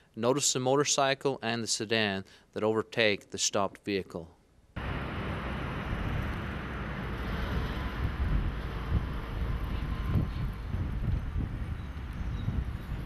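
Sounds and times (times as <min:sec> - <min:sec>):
road traffic passing: 0:04.8 - 0:13.0
wind buffeting microphone: 0:04.8 - 0:13.0.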